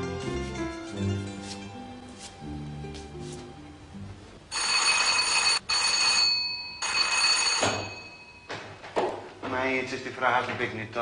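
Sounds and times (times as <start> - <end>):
electric doorbell ringing: 4.5 - 8.5.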